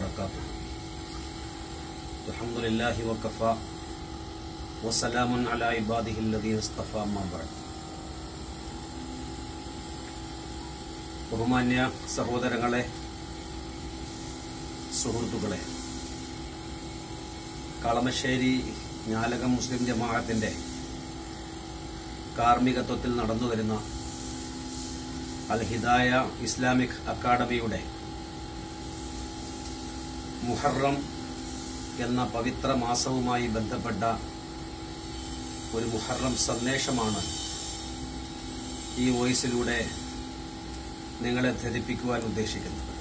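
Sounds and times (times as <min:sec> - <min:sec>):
low background hum: 0:00.0 - 0:43.0.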